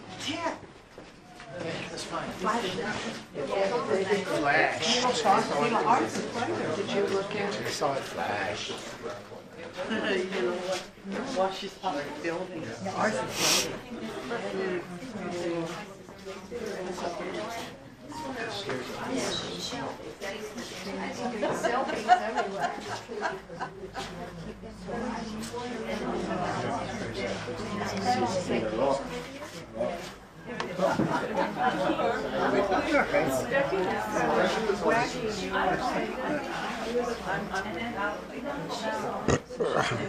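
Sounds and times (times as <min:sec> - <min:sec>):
people chattering: 0:00.0 - 0:40.0
short sharp hiss: 0:13.3 - 0:13.8.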